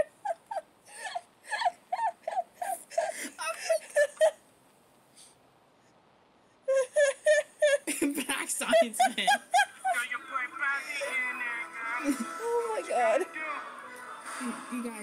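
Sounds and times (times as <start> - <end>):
high-pitched laughter: 0.0 - 4.4, 6.7 - 13.4.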